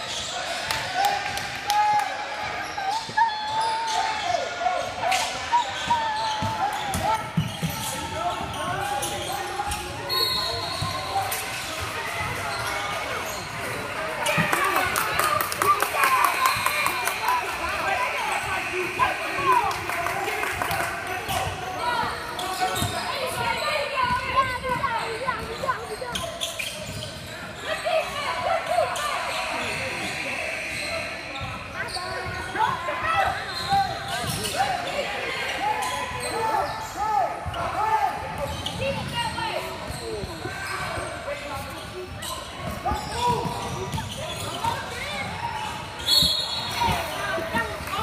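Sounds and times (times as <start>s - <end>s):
sneakers squeaking: 0.0s - 1.4s, 2.4s - 48.0s
referee's whistle: 10.0s - 11.4s, 46.0s - 47.2s.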